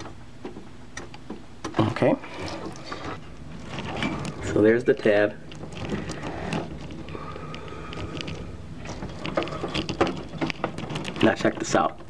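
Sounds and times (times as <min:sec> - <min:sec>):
faint handling inside metal case: 0:02.0 - 0:12.0.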